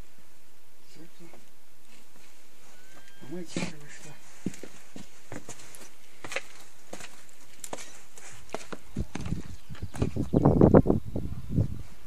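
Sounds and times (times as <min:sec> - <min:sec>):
footsteps: 0:01.2 - 0:10.4.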